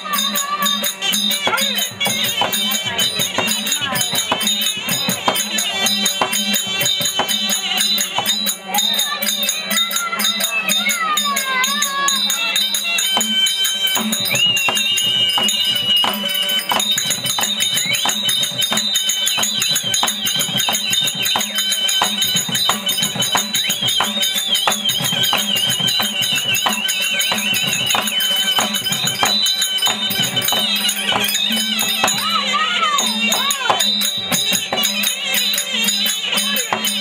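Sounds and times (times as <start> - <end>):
harmonium drone: 0.0 - 10.2
shrill double-reed pipe melody: 0.0 - 37.0.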